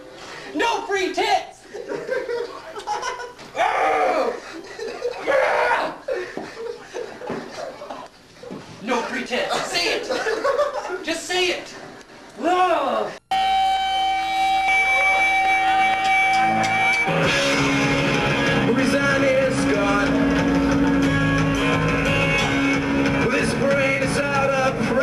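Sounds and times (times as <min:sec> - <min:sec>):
punk rock band playing: 0:13.3 - 0:25.0.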